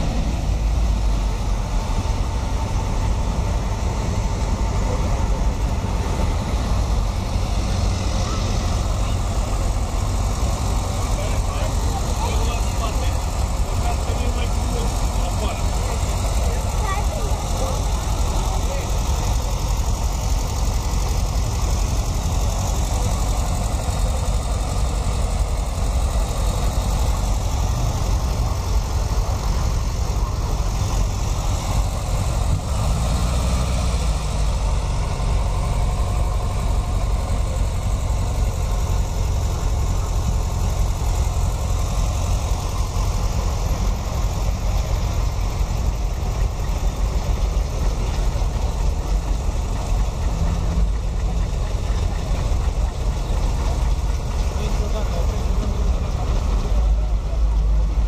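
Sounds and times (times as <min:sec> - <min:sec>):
car engines idling: 0:00.0 - 0:58.0
people talking: 0:04.0 - 0:32.8, 0:35.0 - 0:58.0.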